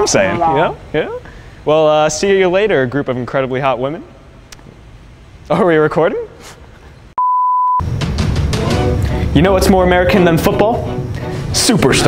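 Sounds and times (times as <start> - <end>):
high electronic beep: 7.2 - 7.8
music with steady beat: 7.8 - 11.6.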